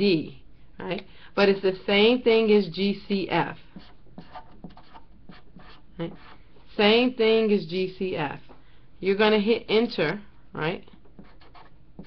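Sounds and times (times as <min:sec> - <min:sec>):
marker scratching on paper: 0:03.6 - 0:06.4, 0:11.2 - 0:12.0.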